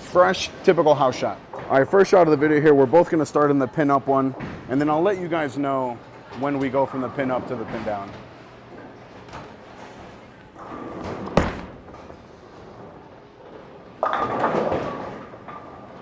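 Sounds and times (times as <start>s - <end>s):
bowling ball rolling: 7.3s - 16.0s
bowling pins clattering: 8.8s - 16.0s
bowling ball thud on lane: 11.0s - 12.0s.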